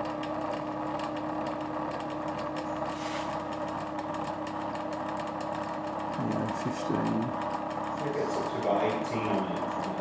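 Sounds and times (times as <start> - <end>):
buzzing hum: 0.0 - 10.0
fast fine clicks: 0.0 - 10.0.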